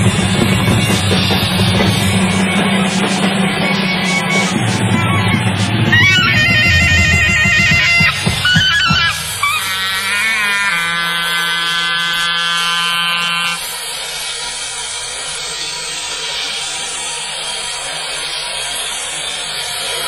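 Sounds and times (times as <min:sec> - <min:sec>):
steady noise wash: 0:00.0 - 0:09.6.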